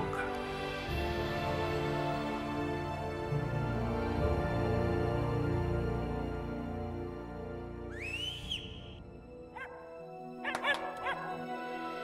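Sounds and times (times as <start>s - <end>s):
soft soundtrack music: 0.0s - 12.0s.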